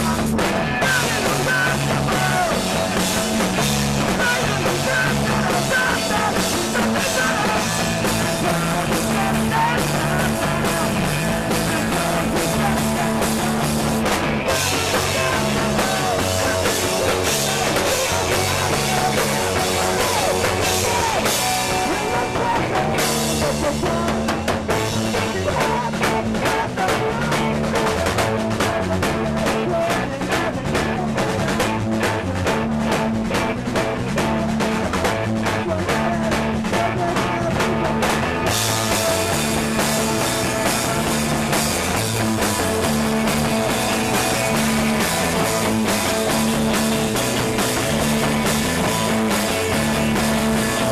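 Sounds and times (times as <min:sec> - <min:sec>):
bass guitar: 0:00.0 - 0:50.9
drum kit with crashing cymbals: 0:00.0 - 0:50.9
electric guitar: 0:00.0 - 0:50.9.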